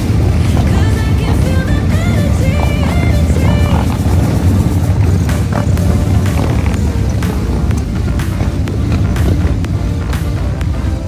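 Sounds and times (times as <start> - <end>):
background music melody: 0.0 - 11.0
motorcycles rumbling past: 0.0 - 11.0.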